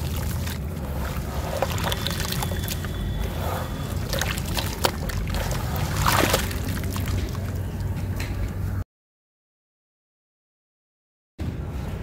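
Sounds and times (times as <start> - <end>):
watery swish: 0.0 - 7.8.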